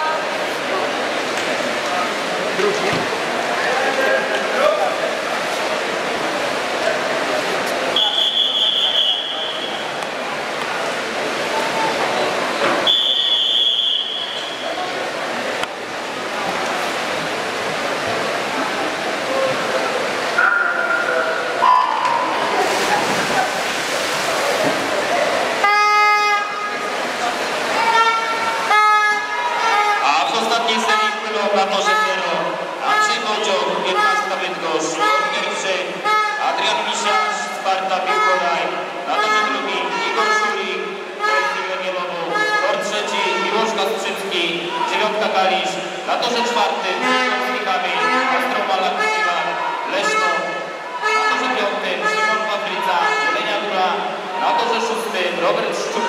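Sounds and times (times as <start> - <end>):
crowd echoing in swimming hall: 0.0 - 56.0
referee's whistle blasts: 8.0 - 9.9, 12.8 - 14.8.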